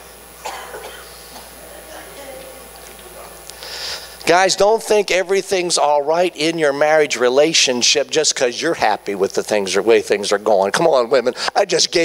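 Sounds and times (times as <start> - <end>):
person coughing: 0.4 - 2.1.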